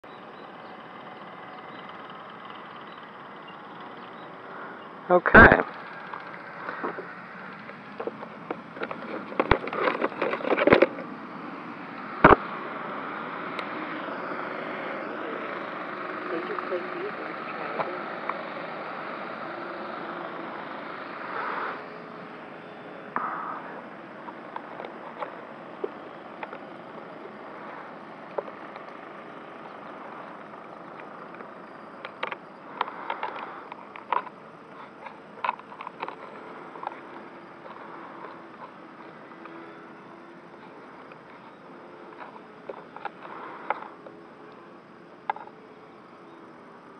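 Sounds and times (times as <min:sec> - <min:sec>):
outdoor background noise: 0:00.0 - 0:46.9
knocks and clicks on model airplane: 0:07.6 - 0:11.1
small clicks: 0:24.2 - 0:39.6.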